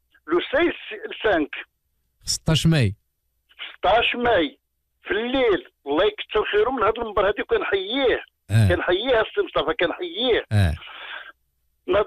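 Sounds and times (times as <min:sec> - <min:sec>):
man talking over telephone: 0:02.3 - 0:03.0, 0:05.1 - 0:11.2
second voice interjecting: 0:08.5 - 0:08.8, 0:10.5 - 0:10.9.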